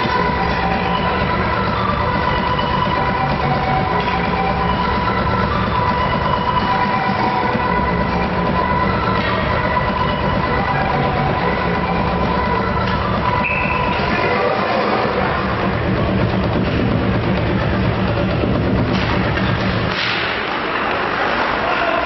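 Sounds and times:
ice rink rumble and hum: 0:00.0 - 0:22.0.

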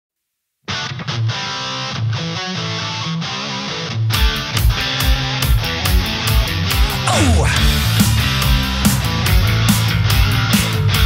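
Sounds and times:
electric guitar riff: 0:00.7 - 0:09.6
rock drum beat: 0:04.6 - 0:11.0.

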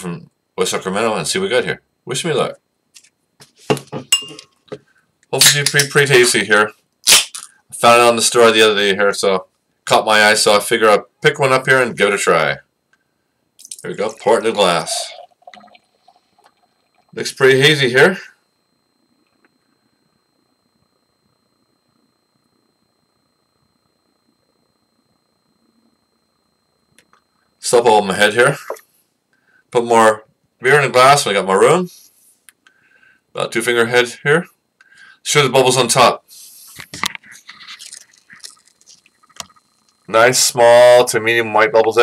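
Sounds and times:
faint high-pitched electronic whine: 0:00.0 - 0:42.0
beer pouring into a glass: 0:13.7 - 0:17.8, 0:37.7 - 0:39.6.

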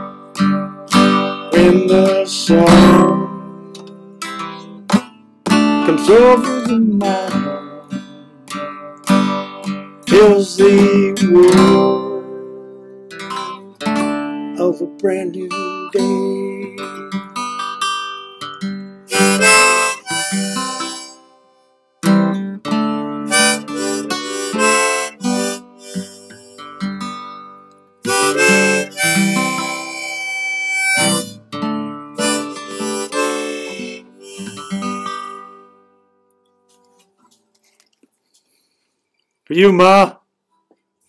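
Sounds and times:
strummed acoustic guitar: 0:00.0 - 0:37.8
harmonica playing: 0:19.1 - 0:21.6, 0:23.2 - 0:27.2, 0:28.0 - 0:31.4, 0:32.1 - 0:35.9.

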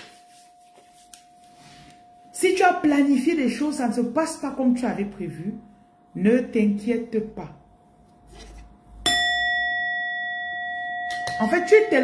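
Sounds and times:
metal bell ringing: 0:09.0 - 0:12.0.

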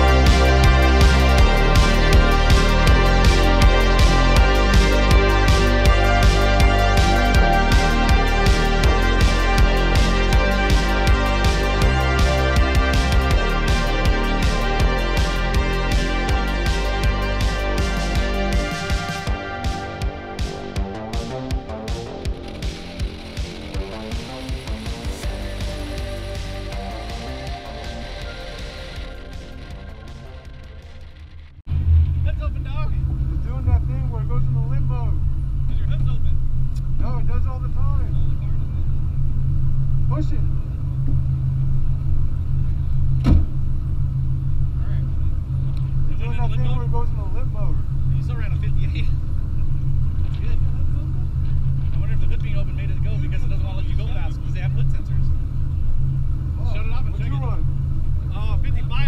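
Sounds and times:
background music: 0:00.0 - 0:59.0
car engine idling: 0:00.0 - 0:59.0.

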